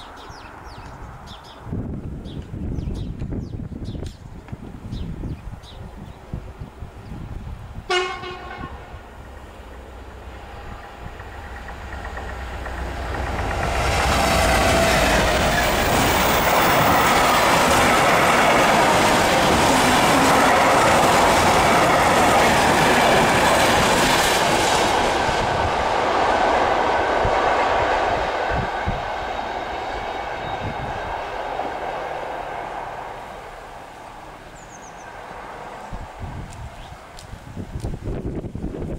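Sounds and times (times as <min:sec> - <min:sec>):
train horn blast: 0:07.9 - 0:09.0
freight train wheels clattering: 0:09.2 - 0:25.8.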